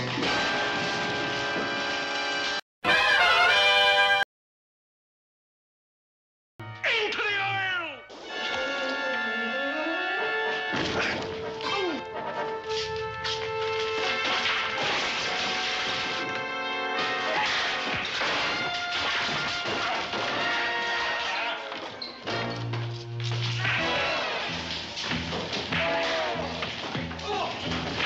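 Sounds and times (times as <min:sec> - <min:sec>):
fight scene music: 0:10.5 - 0:28.0
props being smashed: 0:13.4 - 0:21.6, 0:23.5 - 0:28.0.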